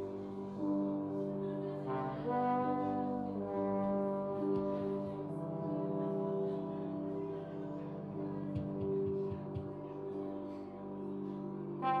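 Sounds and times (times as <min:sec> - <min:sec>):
trombone playing held notes: 0:00.0 - 0:10.1, 0:11.8 - 0:12.0.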